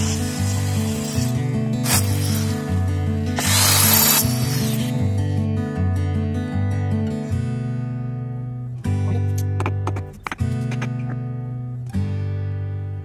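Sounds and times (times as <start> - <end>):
electric drill boring into wall: 0.0 - 5.0.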